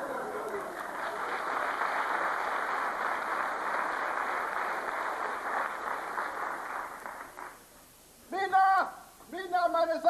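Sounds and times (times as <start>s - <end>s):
audience applauding: 0.0s - 7.6s.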